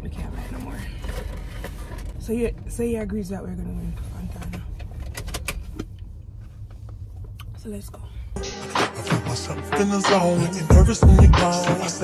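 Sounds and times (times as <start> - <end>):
low rumble inside car: 0.0 - 8.4.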